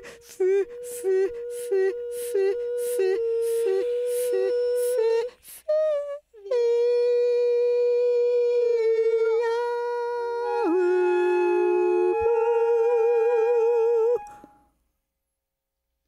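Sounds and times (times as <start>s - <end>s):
woman singing held note: 0.0s - 6.2s.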